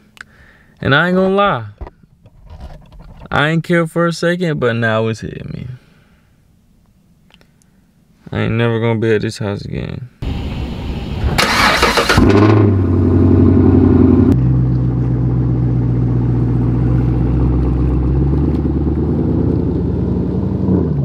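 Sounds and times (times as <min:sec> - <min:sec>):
car engine starting and idling: 0:10.2 - 0:21.0.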